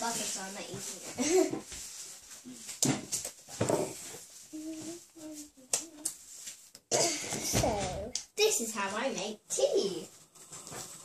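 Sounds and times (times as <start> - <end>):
person coughing: 6.9 - 7.4.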